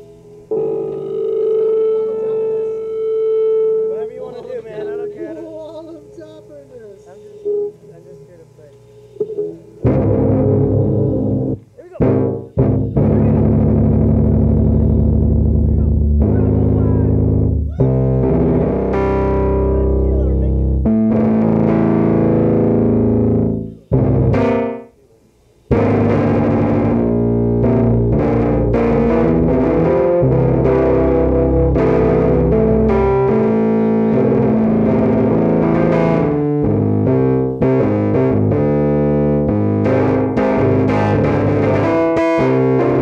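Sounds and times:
distorted electric guitar chord: 0.0 - 6.5, 9.8 - 24.9, 25.7 - 43.0
steady electronic tone: 0.0 - 25.0, 25.7 - 43.0
rock band playing: 9.8 - 24.9, 25.7 - 43.0.

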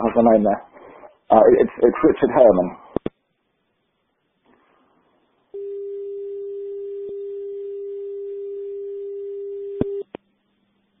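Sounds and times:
telephone line tone: 5.6 - 10.0.

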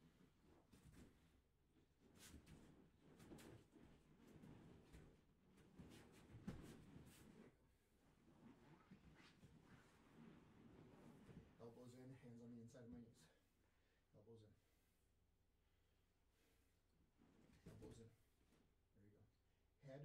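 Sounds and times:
soft bumps on a mat: 0.0 - 11.6
fabric rustling: 0.0 - 11.8.

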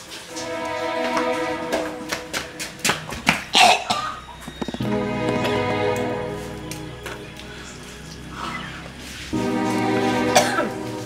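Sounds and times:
background music: 0.0 - 11.0
woman coughing hard: 3.5 - 4.2, 10.3 - 10.8.

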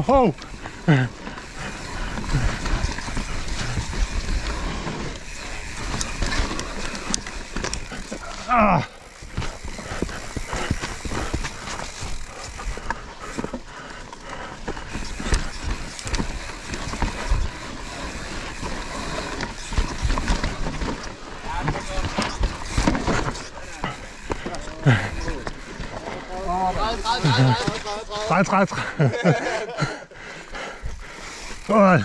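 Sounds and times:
bike rattling and clattering: 0.0 - 32.0
bike tyres rolling over dirt: 0.0 - 32.0
rider vocal sound: 7.8 - 13.5, 17.0 - 29.0.

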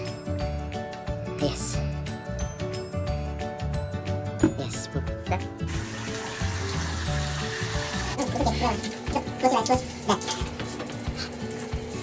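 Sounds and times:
background music: 0.0 - 12.0
water running into a bathtub: 5.7 - 12.0.

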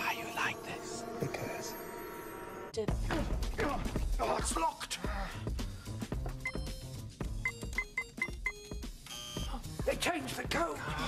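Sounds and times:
background music: 0.0 - 11.0
keypad beeps: 6.4 - 6.8, 7.4 - 9.5.

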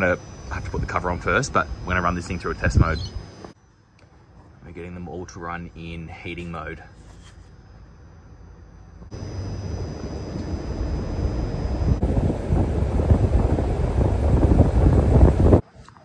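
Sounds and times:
fan rushing air: 0.0 - 3.6, 5.8 - 15.6.

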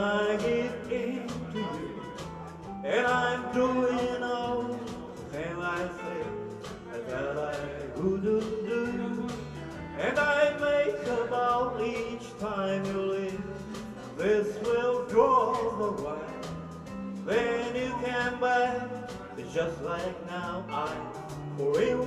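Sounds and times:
acoustic guitar: 0.0 - 22.0
drums: 0.0 - 22.0
electric bass: 0.0 - 22.0.

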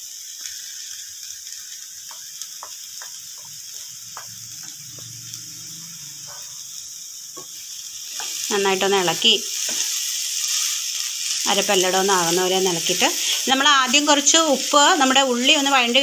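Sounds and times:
food sizzling in frying pan: 0.0 - 16.0
wooden spatula scraping: 5.8 - 6.7.

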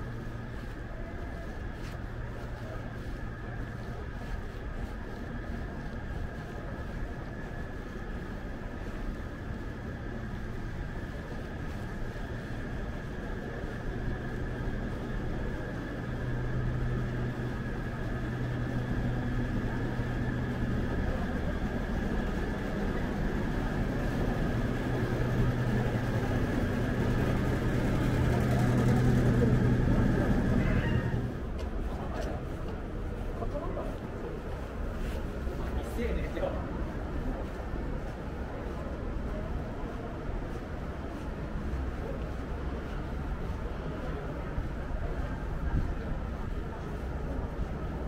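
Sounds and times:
low hum of building machinery: 0.0 - 48.0
faint high whine: 9.8 - 32.0.

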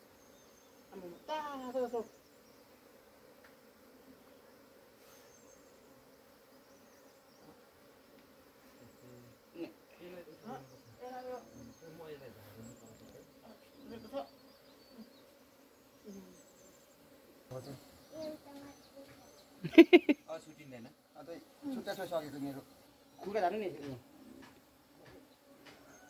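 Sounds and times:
honeybees buzzing: 0.0 - 26.0.

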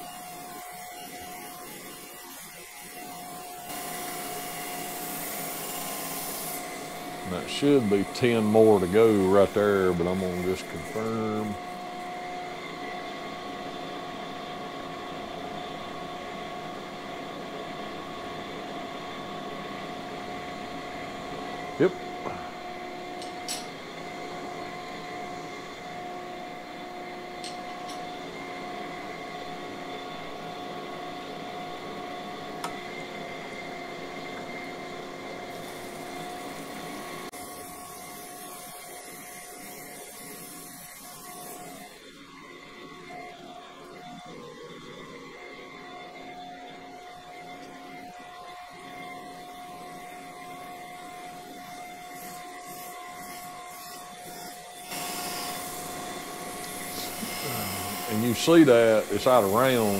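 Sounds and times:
grinding machine whine: 0.0 - 59.9.

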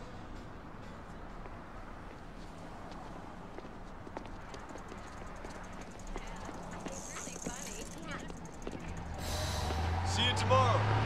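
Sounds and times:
low street hum: 0.0 - 11.0
footsteps on pavement: 1.2 - 10.0
faint rapid high ticking: 4.2 - 9.3.

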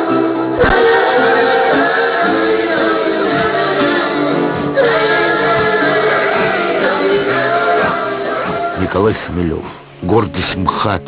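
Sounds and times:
group of voices singing: 0.0 - 9.5.

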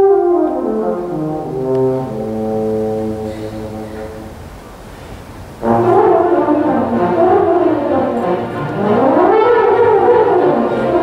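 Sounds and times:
full orchestra playing loudly: 0.0 - 4.4, 5.6 - 11.0.

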